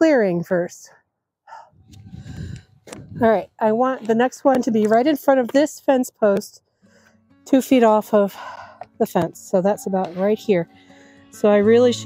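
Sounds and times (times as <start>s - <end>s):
short breath: 1.5s - 3.0s, 6.8s - 7.2s, 8.3s - 8.9s, 10.7s - 11.3s
low rumbling rustling noise: 1.8s - 3.4s.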